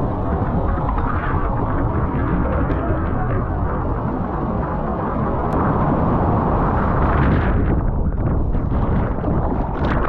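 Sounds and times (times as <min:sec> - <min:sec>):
surfboard rushing through water: 0:00.0 - 0:10.0
wind buffeting microphone: 0:00.0 - 0:10.0.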